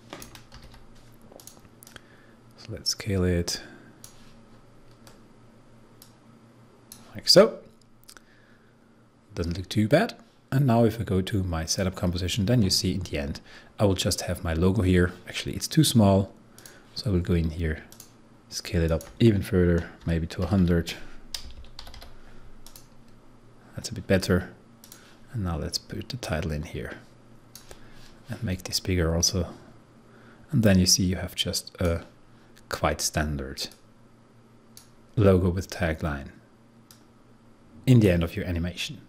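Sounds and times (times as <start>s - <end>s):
low room hum: 0.0s - 39.0s
computer mouse clicks: 0.1s - 2.0s, 17.9s - 18.2s, 21.3s - 23.2s, 24.8s - 25.0s, 27.5s - 27.8s.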